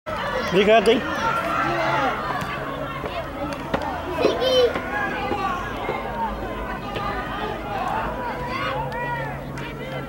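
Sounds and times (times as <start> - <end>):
loud drawn-out shout: 0.1 - 10.0
voices shouting and calling: 0.1 - 10.0.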